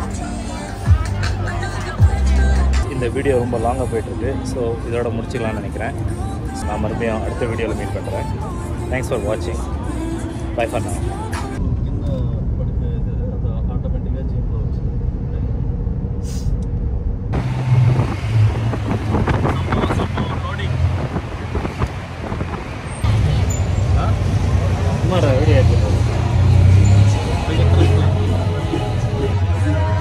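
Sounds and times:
vehicle engine and road rumble: 0.0 - 30.0
tuk-tuk engine throbbing and rattling: 11.5 - 30.0
passengers' voices: 24.0 - 30.0.

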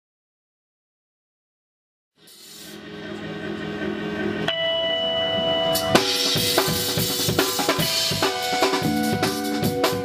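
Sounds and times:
low held chord: 2.8 - 10.0
bell-like note: 4.5 - 6.8.

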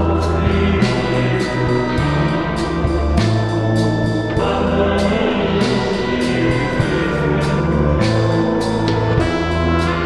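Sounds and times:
psychedelic rock music: 0.0 - 10.0.

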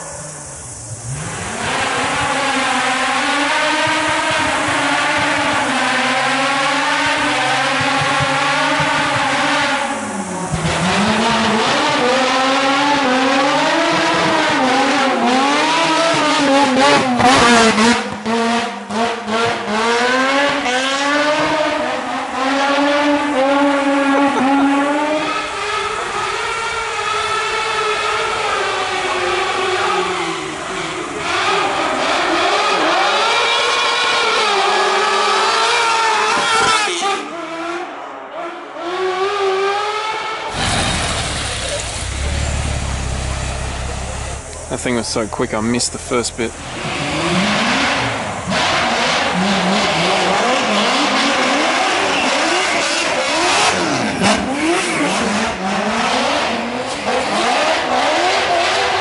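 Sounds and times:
race car engine revving: 0.0 - 59.0.

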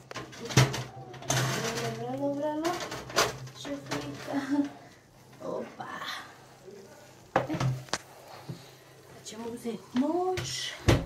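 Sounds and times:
metal baking tray clunking: 0.1 - 4.7.

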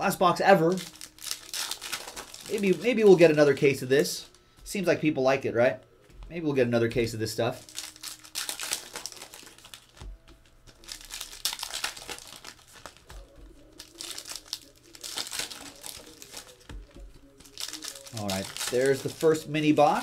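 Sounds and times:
plastic wrapping crinkling and tearing: 0.0 - 4.4, 7.5 - 20.0.

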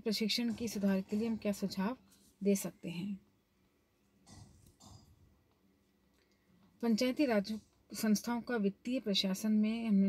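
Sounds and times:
woman speaking: 0.0 - 3.2, 6.8 - 10.0.

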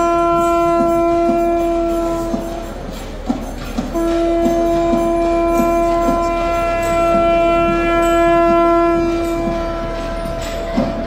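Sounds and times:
conch shell blown: 0.0 - 11.0.

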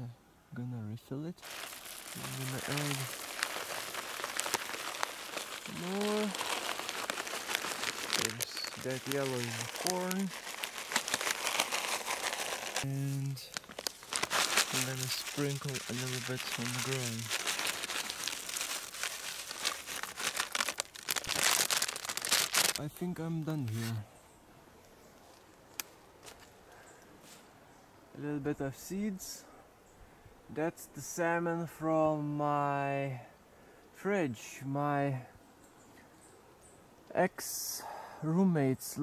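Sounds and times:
feed bag crinkling: 1.4 - 22.9
grain flakes pouring onto wood: 1.4 - 22.9.

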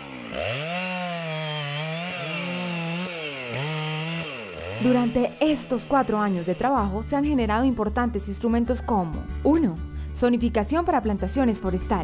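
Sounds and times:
chainsaw cutting wood: 0.0 - 7.4.

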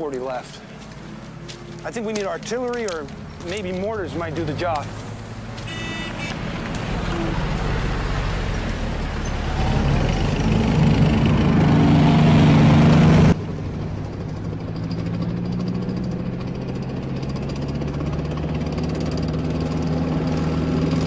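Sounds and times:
tank engine running: 0.6 - 21.0.

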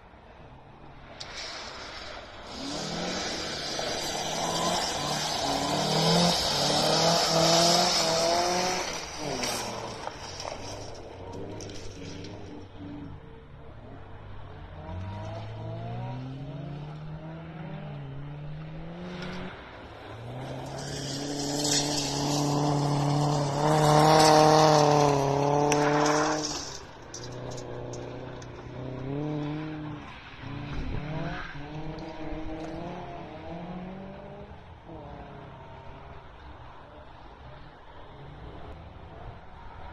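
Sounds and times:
tyres on gravel: 0.0 - 35.3
distant engine revving: 1.0 - 36.5
rally car engine revving: 1.0 - 39.9.

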